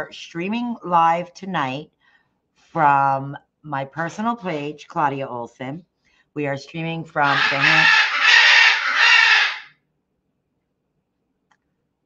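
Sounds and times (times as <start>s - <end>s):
rooster crowing: 7.3s - 9.7s.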